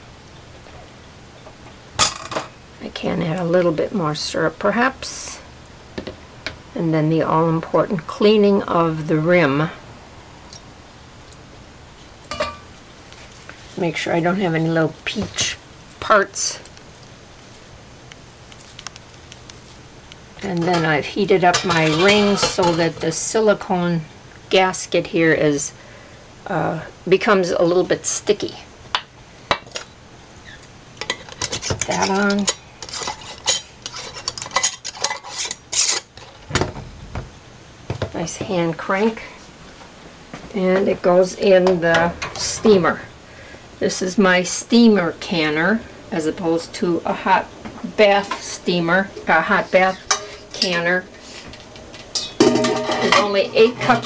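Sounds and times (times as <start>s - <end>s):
quiet kitchen background: 0.0s - 54.0s
metal threads scraping on glass: 31.5s - 36.3s
ladle clinking on kitchenware: 52.2s - 54.0s.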